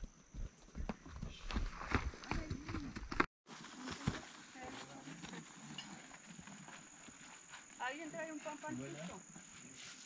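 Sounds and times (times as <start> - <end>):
footsteps on grass and dirt: 0.0 - 10.0.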